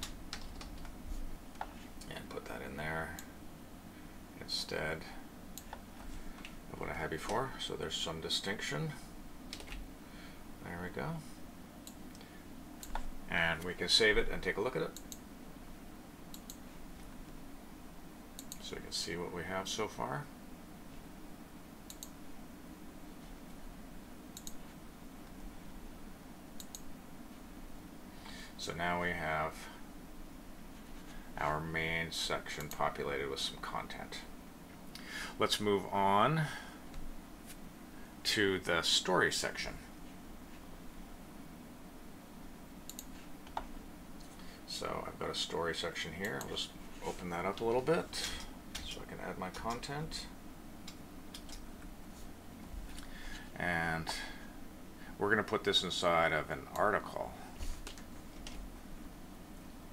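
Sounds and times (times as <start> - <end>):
low room hum: 0.0 - 59.9
computer mouse clicking: 5.6 - 5.8, 9.5 - 9.8, 12.8 - 13.1, 15.0 - 15.2, 16.3 - 16.6, 21.9 - 22.2, 24.4 - 24.6, 26.6 - 26.9, 42.9 - 44.3, 50.9 - 51.7.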